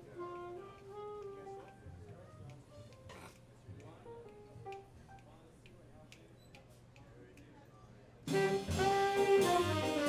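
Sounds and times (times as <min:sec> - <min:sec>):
faint irregular clicks: 0:00.3 - 0:07.5.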